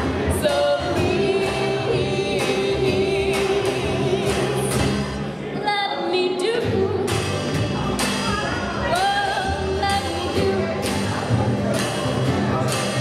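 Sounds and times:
women singing together: 0:00.1 - 0:07.4, 0:08.8 - 0:11.0.

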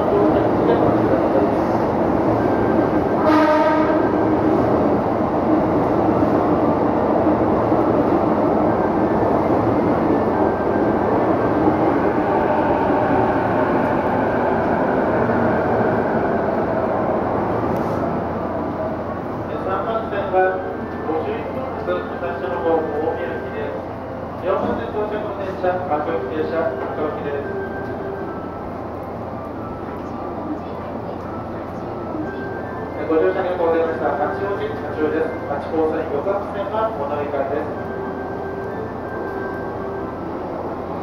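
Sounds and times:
train and station noise: 0:00.0 - 0:41.0
short horn-like tone: 0:03.2 - 0:04.0.

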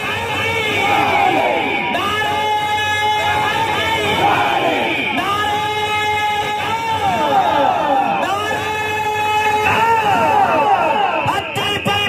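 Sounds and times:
crowd singing along: 0:00.0 - 0:11.4.

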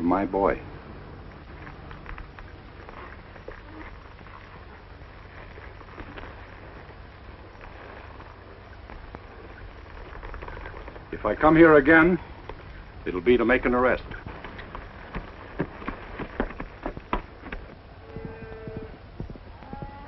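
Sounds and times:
low film hiss and hum: 0:00.0 - 0:20.0
faint scattered clicks: 0:07.6 - 0:12.8.

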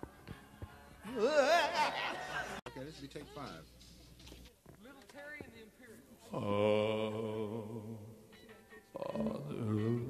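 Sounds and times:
man singing long low note: 0:06.3 - 0:08.2, 0:09.0 - 0:10.0.

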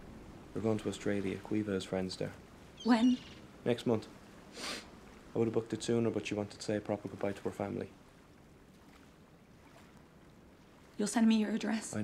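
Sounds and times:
low rumble: 0:00.0 - 0:02.4.

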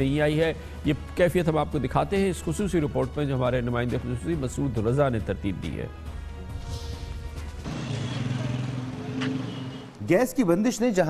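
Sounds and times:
vehicle engine running: 0:07.6 - 0:10.0.

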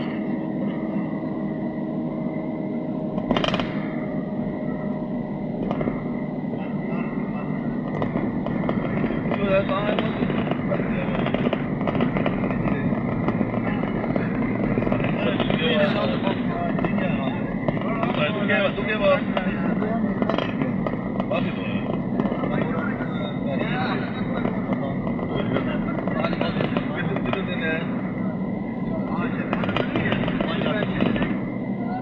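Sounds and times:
car road and engine noise: 0:00.0 - 0:32.0
indistinct voices: 0:00.0 - 0:32.0.

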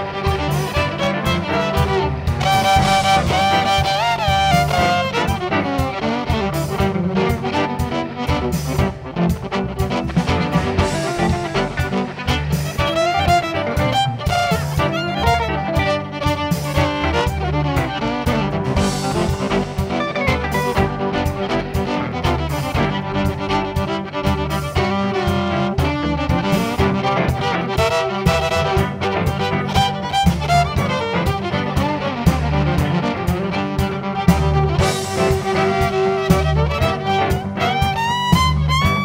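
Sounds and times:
fiddle melody: 0:00.0 - 0:39.0
western swing band playing: 0:00.0 - 0:39.0.

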